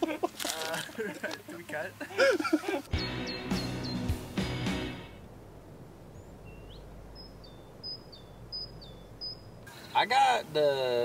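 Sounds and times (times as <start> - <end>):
faint steady hiss: 0.0 - 3.0, 3.8 - 11.0
bird chirping: 2.9 - 4.8, 5.7 - 10.3.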